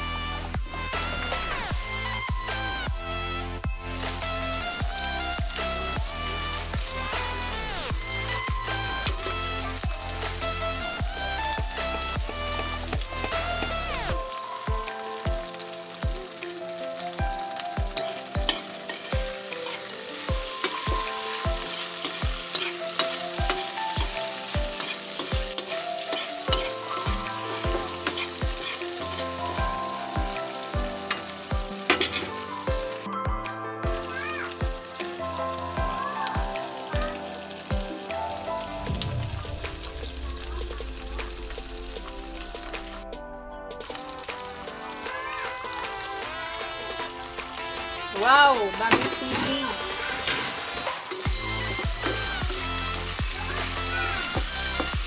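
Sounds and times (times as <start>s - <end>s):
background music with bass beat: 0.0s - 16.3s, 34.6s - 48.2s, 51.0s - 55.0s
food sizzling in a wok: 0.0s - 43.1s, 43.7s - 55.0s
scrapes in a wok: 21.7s - 24.1s.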